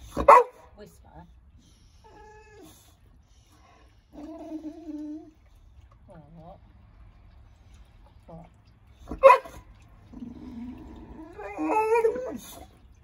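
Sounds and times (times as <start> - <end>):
dog sharp bark: 0.2 - 0.6, 9.2 - 9.6.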